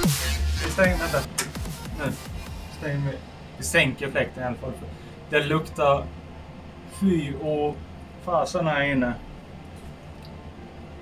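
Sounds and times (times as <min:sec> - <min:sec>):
dubstep music with bass sweeps: 0:00.0 - 0:03.0.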